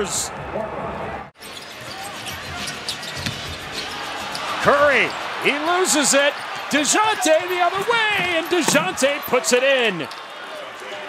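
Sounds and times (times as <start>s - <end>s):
arena crowd noise: 0.0s - 11.0s
basketball bouncing on wood court: 2.4s - 3.8s.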